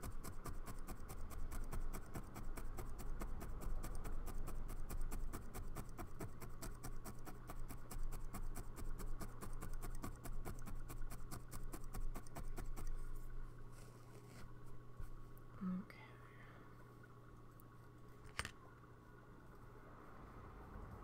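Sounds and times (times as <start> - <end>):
felting needle stabbing felt: 0.0 - 13.1.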